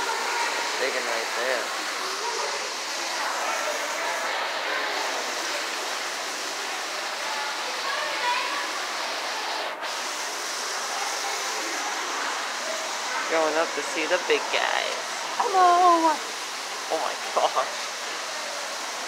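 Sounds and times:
faint voices talking: 0.0 - 19.0
water rushing in aquarium system: 0.0 - 19.0.

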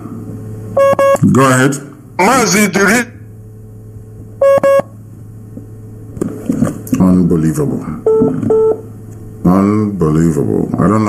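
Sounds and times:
steady low hum: 0.0 - 11.0
short electronic beeps: 0.8 - 1.2, 4.4 - 4.9, 8.1 - 8.8.

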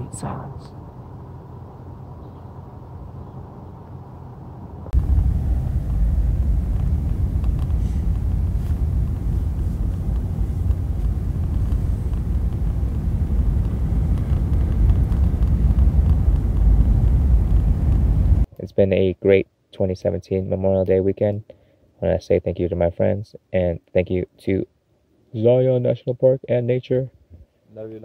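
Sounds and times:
low hum: 0.0 - 18.5
road and engine noise in car: 0.0 - 18.5.

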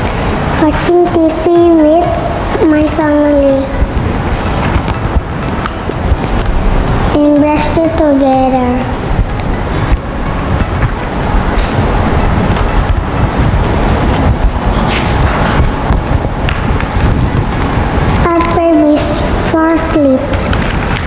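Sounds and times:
child speaking: 0.6 - 3.8, 7.1 - 9.0, 18.2 - 20.4
paper rustling on microphone: 14.0 - 15.7.

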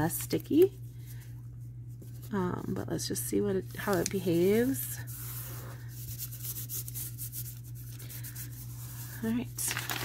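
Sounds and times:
fingers rubbing tape on paper: 4.4 - 9.3.

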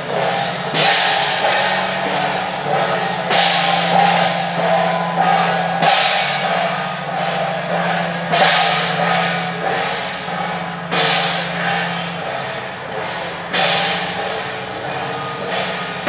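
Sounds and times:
drum and cymbal beats: 0.0 - 16.0
loud cymbal crash: 0.0 - 16.0
steady low drone: 0.0 - 16.0.

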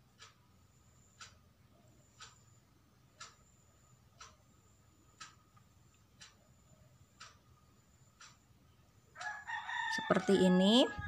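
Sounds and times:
clock ticking: 0.0 - 10.9
rooster crowing: 9.2 - 11.0.

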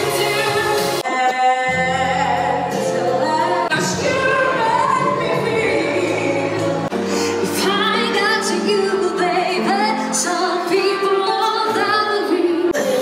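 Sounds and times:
music with singing voice: 0.0 - 13.0.

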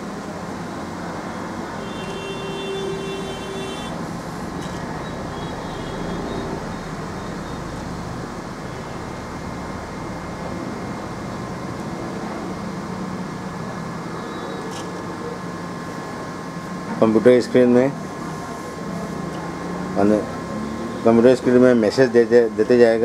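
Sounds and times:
steady background noise: 0.0 - 23.0.

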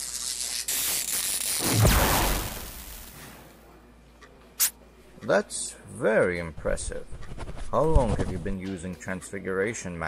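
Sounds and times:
electric zap crackling: 0.0 - 3.2.

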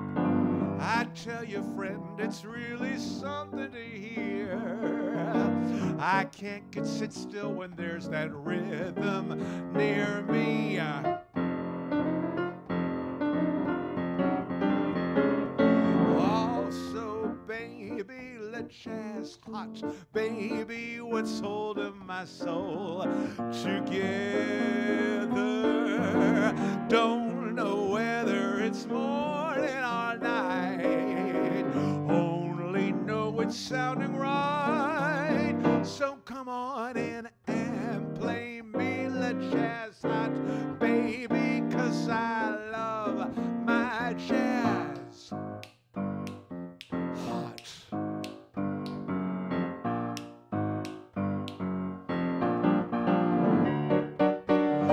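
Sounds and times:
jazz piano: 0.0 - 36.1, 36.9 - 54.9.

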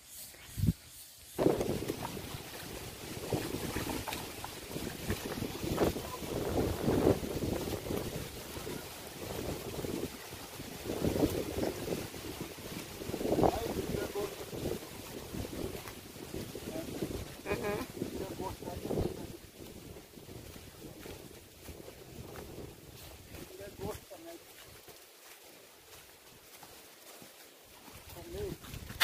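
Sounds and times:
wind buffeting microphone: 1.4 - 24.2, 28.0 - 29.0
footsteps on loose stones: 1.4 - 29.0.

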